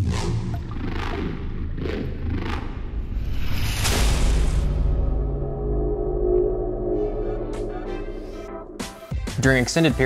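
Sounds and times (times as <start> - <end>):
deep rumble: 0.1 - 9.4.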